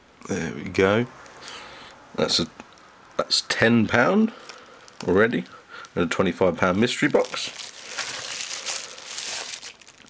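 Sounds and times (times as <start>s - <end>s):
crinkling handling noise: 4.2s - 10.0s.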